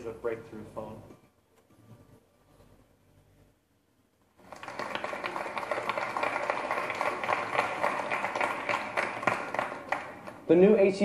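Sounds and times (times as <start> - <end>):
audience applauding: 4.4 - 10.5.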